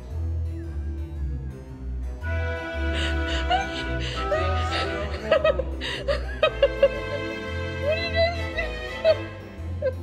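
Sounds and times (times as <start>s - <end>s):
background music: 0.0s - 10.0s
chuckling laughter: 3.0s - 7.5s.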